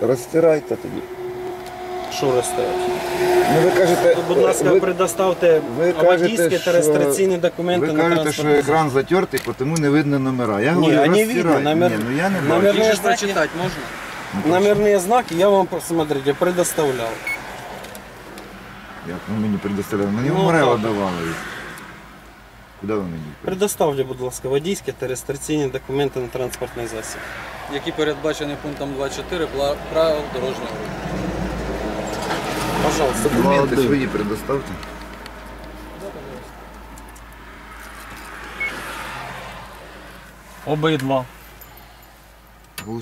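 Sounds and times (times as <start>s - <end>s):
man speaking: 0.0s - 1.1s, 2.1s - 17.2s, 32.7s - 34.8s
vehicle passing: 0.0s - 22.6s, 25.6s - 42.4s.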